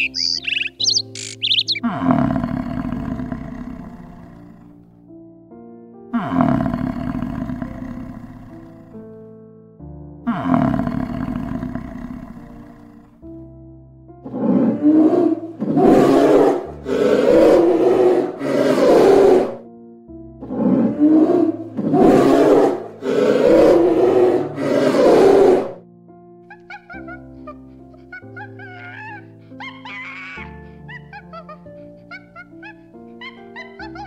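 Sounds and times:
soft piano music: 0.0s - 16.9s, 19.6s - 21.9s, 25.8s - 34.0s
large animal roaring: 1.6s - 4.8s, 6.2s - 8.7s, 14.3s - 19.6s, 20.5s - 25.8s.

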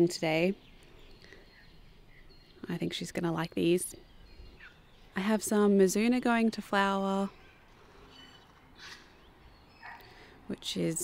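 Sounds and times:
faint bird calls: 7.3s - 10.5s.

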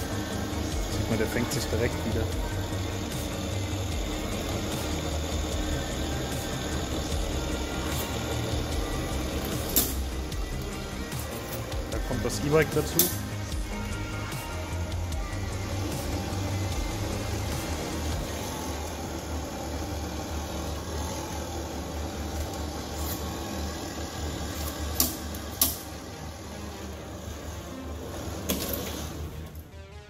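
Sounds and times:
low hum of belt rig: 0.0s - 29.7s
background music: 0.0s - 30.0s.

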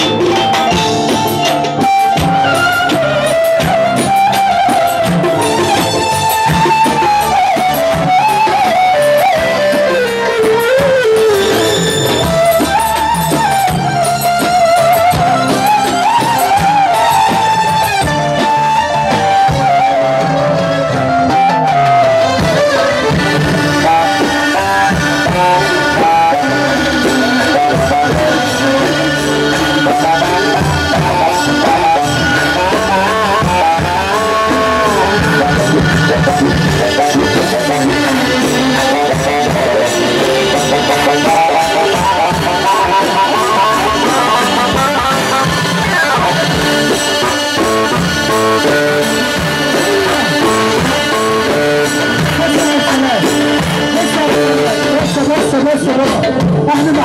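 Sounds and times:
electronic keyboard melody: 0.0s - 57.0s
steady beat: 0.0s - 57.0s.

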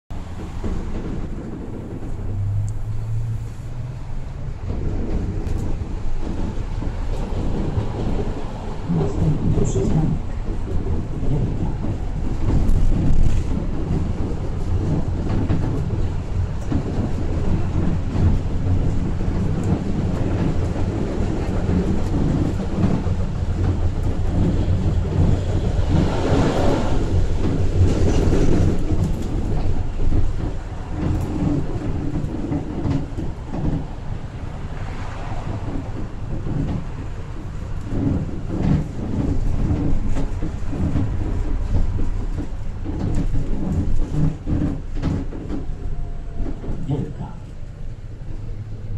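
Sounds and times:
moving tram rumble: 0.1s - 48.9s.

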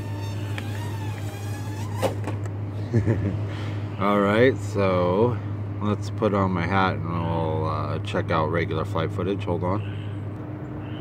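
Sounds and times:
quadcopter motors whining: 0.0s - 2.2s.

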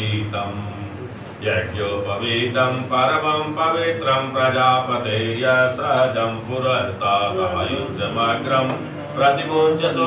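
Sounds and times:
men chanting: 1.4s - 10.0s.

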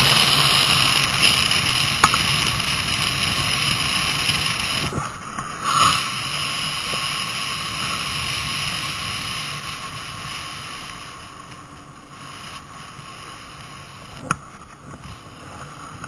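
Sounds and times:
tyres rolling on asphalt: 0.0s - 16.0s
wind rushing over microphone: 0.0s - 16.0s.

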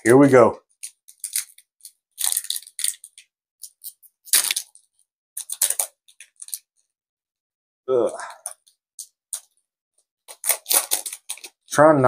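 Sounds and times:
foil wrapper crinkling and tearing: 0.8s - 6.7s, 10.3s - 11.7s.

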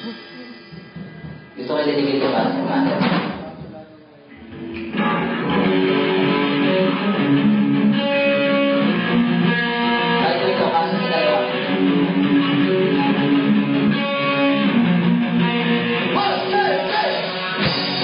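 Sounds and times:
amplified guitar strumming chords: 4.4s - 18.0s.

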